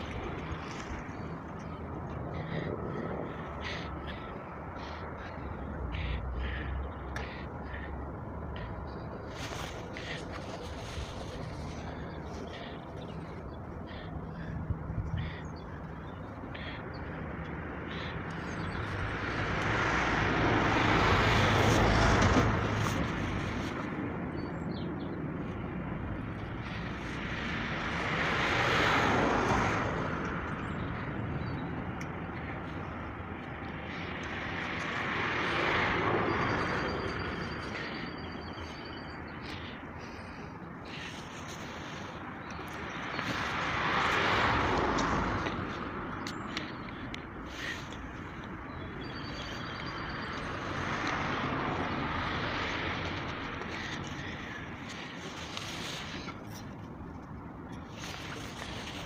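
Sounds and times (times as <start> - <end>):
steady outdoor background: 0.0 - 59.0
vehicles passing: 0.0 - 59.0.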